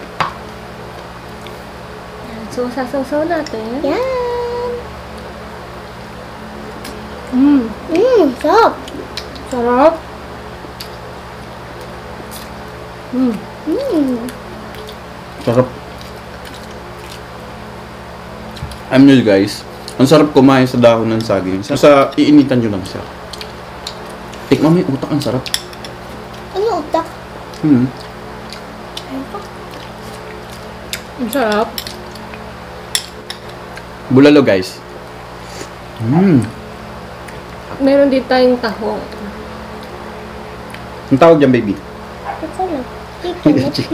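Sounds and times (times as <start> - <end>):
steady low hum: 0.0 - 43.9
quiet chewing: 8.3 - 9.5, 14.1 - 17.4, 22.8 - 24.5, 27.4 - 32.5.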